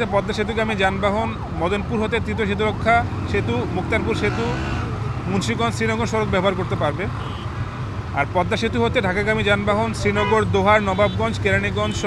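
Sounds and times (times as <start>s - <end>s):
man speaking: 0.0s - 4.6s, 5.2s - 7.2s, 8.2s - 12.0s
low rumble of road traffic: 0.0s - 12.0s.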